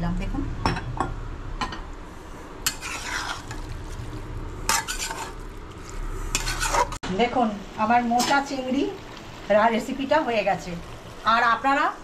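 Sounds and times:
faint sizzle of curry cooking: 0:02.1 - 0:12.0
spatula scraping steel pan: 0:02.6 - 0:03.6, 0:04.6 - 0:05.4, 0:06.3 - 0:07.0.

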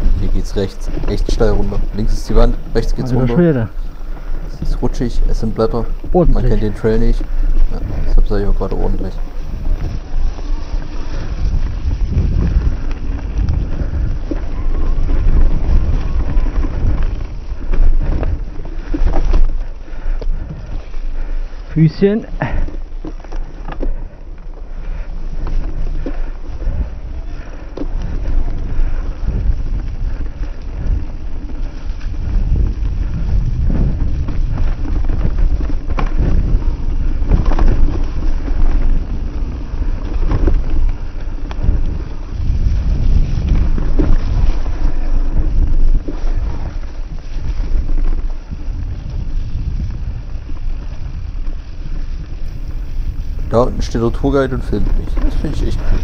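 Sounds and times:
bike knocking and rattling: 0:00.0 - 0:56.0
tyres rolling over dirt and leaves: 0:00.0 - 0:56.0
wind buffeting microphone: 0:00.0 - 0:56.0.

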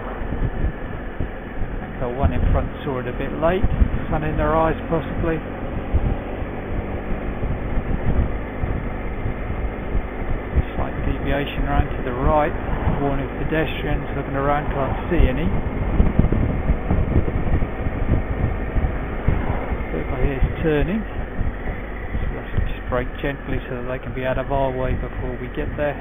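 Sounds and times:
motorcycle engine running: 0:00.0 - 0:26.0
road rumble: 0:00.0 - 0:26.0
wind on microphone: 0:00.0 - 0:26.0.

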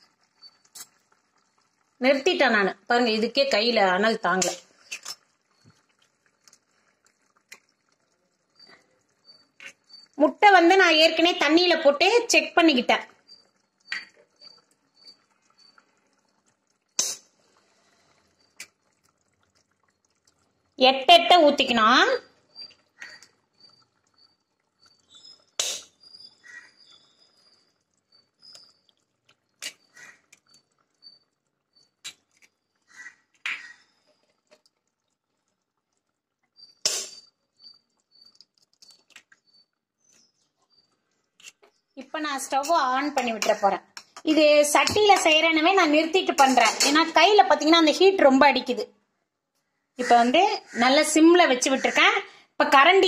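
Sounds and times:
eggs cracking into a pot: 0:00.4 - 0:02.3, 0:03.1 - 0:48.0.

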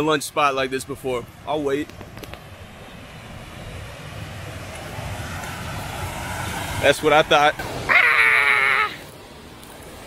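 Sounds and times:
waterfall roaring: 0:01.5 - 0:10.0.

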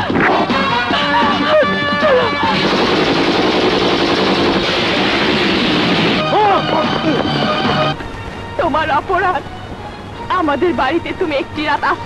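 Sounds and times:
rapid gunfire: 0:02.4 - 0:06.2.

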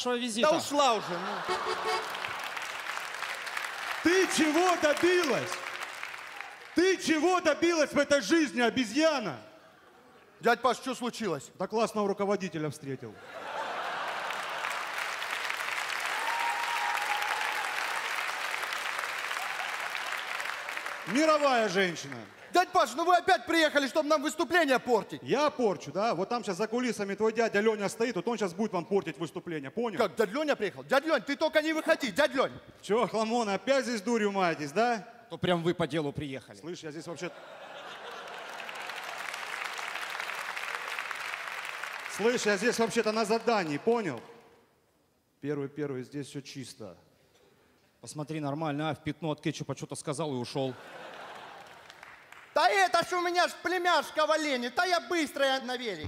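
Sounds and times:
audience applauding: 0:01.0 - 0:07.2, 0:13.4 - 0:22.6, 0:37.8 - 0:44.4, 0:51.0 - 0:52.7.

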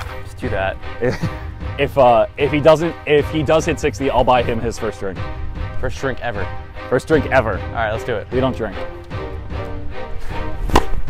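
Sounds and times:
background music: 0:00.0 - 0:11.0
tennis racket hitting ball: 0:10.6 - 0:11.0.

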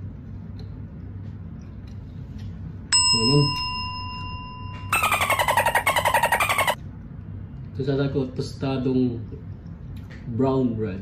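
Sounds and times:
electronic ding: 0:03.0 - 0:06.2.

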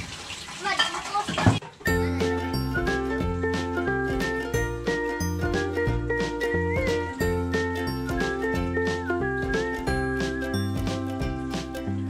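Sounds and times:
background music with steady beat: 0:01.9 - 0:12.0.

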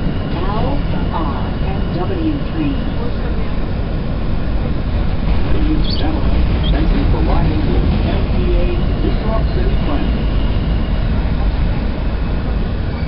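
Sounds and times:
subway car rumble: 0:00.0 - 0:13.0.

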